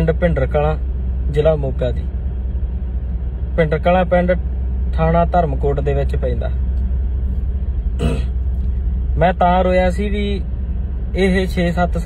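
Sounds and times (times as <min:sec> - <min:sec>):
car interior rumble: 0:00.0 - 0:12.0.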